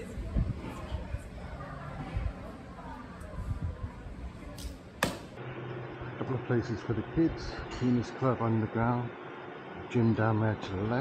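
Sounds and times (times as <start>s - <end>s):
sharp thwack: 5.0s - 5.3s.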